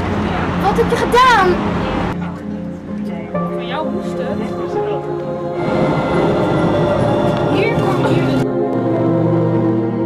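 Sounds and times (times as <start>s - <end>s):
background music: 0.0s - 10.0s
rail vehicle rumbling past: 3.4s - 8.5s.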